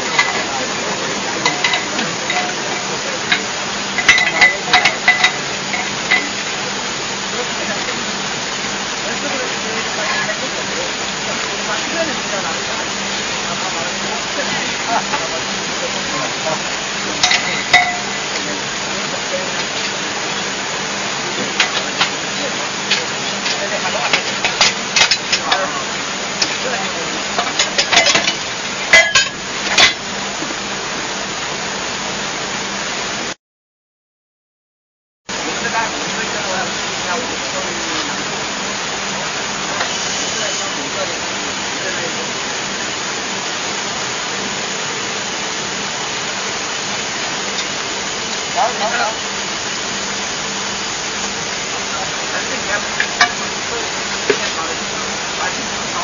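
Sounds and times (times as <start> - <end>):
mining machinery hum: 0.0 - 33.4, 35.3 - 56.0.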